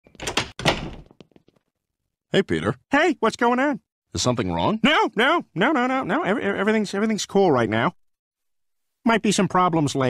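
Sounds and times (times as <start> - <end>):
door opening and shutting: 0.0 - 1.2.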